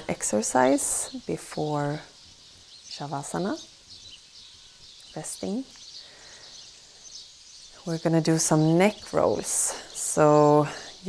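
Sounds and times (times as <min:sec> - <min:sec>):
woman speaking: 0:00.0 - 0:02.1, 0:02.9 - 0:03.7, 0:05.2 - 0:05.7, 0:07.8 - 0:11.0
faint ambient hiss: 0:00.0 - 0:11.0.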